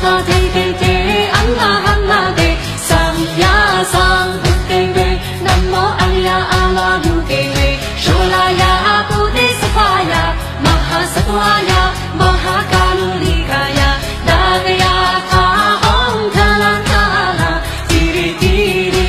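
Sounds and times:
backing track with drum beat: 0:00.0 - 0:19.0
woman singing pop song: 0:00.0 - 0:19.0.

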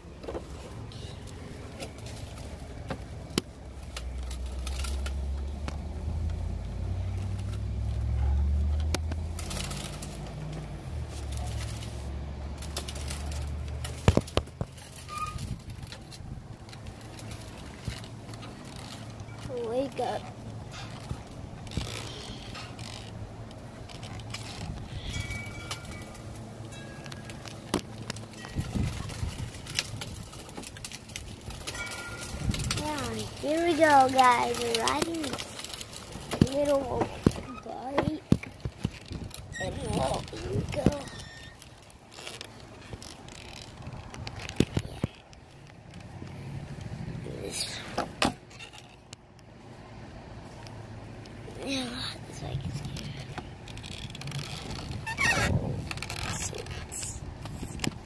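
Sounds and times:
small wheel rumbling on concrete: 0:00.0 - 0:58.0.

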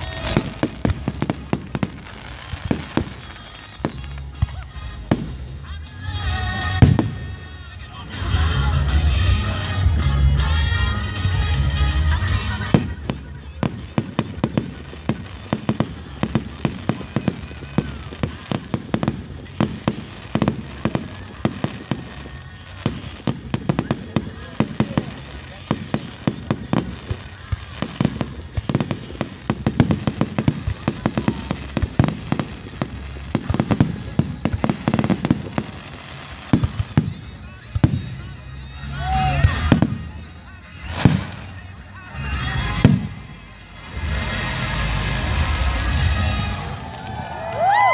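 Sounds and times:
fireworks bangs and crackles: 0:00.0 - 0:47.9.

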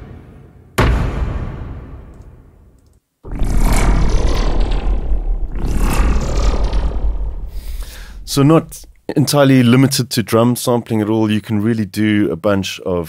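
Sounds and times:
noisy effect with sub-bass rumble: 0:03.2 - 0:09.2
impact hit tail: 0:03.3 - 0:09.0.

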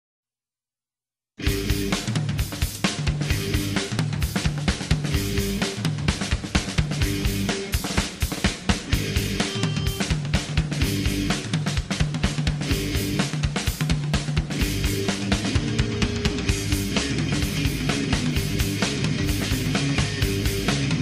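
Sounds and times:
drum kit busy beat: 0:01.4 - 0:21.0
low guitar riff: 0:08.9 - 0:11.4, 0:14.6 - 0:21.0.

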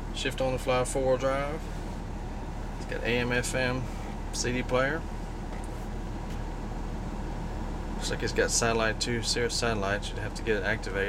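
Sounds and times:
low hum inside truck cab: 0:00.0 - 0:11.0.

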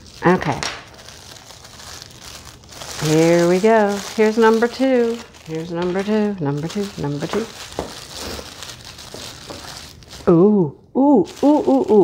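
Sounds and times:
tissue paper crinkling: 0:00.0 - 0:10.4, 0:11.2 - 0:12.0.

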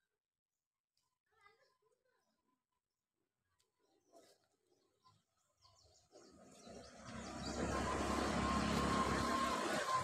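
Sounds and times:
vehicle engine and road noise: 0:06.0 - 0:10.0.

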